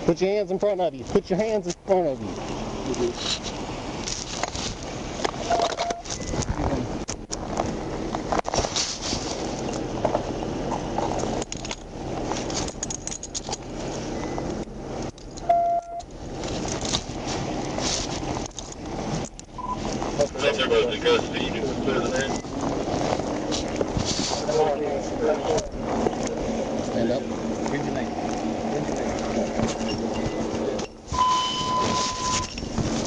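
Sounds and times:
rustling on body microphone: 3.1s - 11.4s, 16.2s - 20.7s, 21.7s - 33.0s
short beep: 5.4s - 6.4s, 15.4s - 16.0s, 19.6s - 19.8s, 29.8s - 32.6s
metallic clinks: 11.4s - 14.4s.

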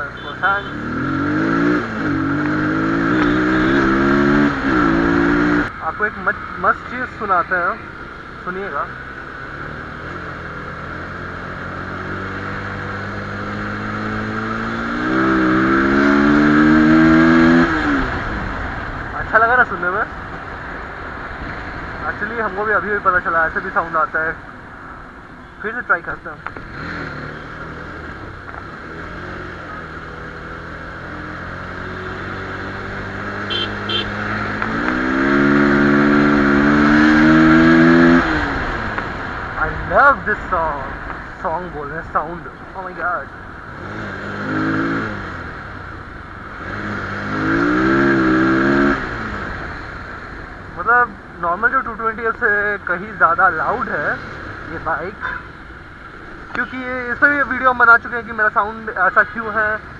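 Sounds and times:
motorcycle engine revving: 0.0s - 19.8s, 26.4s - 51.1s
short high beeps: 3.0s - 4.1s.

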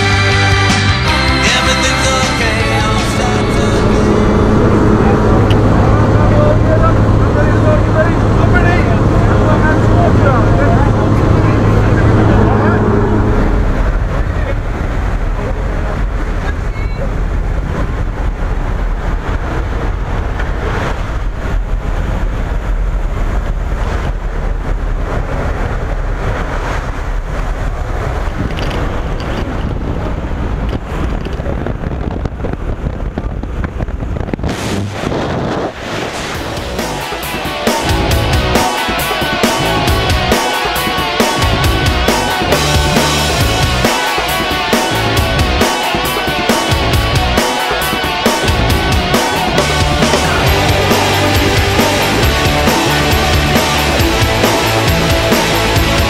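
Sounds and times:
plane engine drone: 0.0s - 56.0s
wind buffeting microphone: 2.6s - 50.8s.

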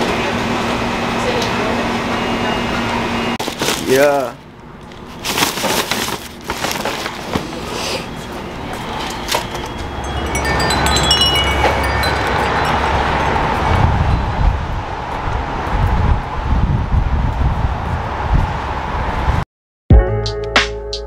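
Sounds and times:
traffic noise: 0.0s - 19.4s
wind buffeting microphone: 12.2s - 19.4s.

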